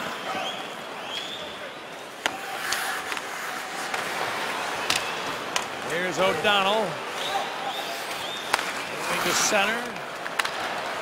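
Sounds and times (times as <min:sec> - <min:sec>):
arena crowd noise: 0:00.0 - 0:11.0
sharp clacks on ice: 0:09.8 - 0:10.7.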